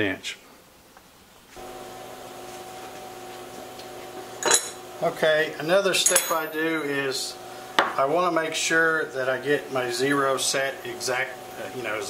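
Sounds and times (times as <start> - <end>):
electrical hum: 1.5 - 12.0.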